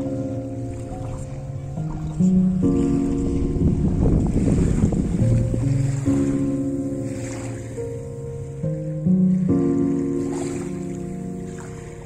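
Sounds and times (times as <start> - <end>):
music of sustained chords: 0.0 - 12.0.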